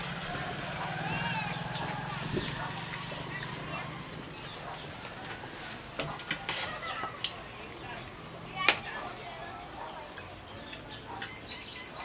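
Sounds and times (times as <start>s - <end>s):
cutlery scraping: 6.0s - 6.9s.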